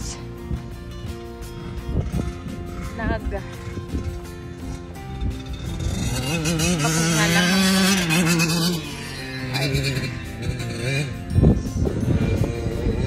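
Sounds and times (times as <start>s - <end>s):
background music: 0.0s - 13.0s
dirt bike passing by: 0.0s - 13.0s.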